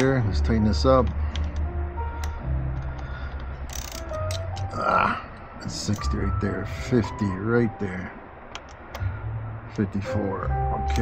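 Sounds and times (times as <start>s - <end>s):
background music: 0.0s - 11.0s
socket ratchet clicking: 1.0s - 4.7s, 8.5s - 9.0s.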